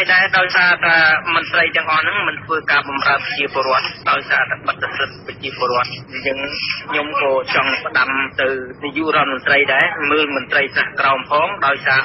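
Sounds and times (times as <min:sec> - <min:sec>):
person reading aloud: 0:00.0 - 0:12.0.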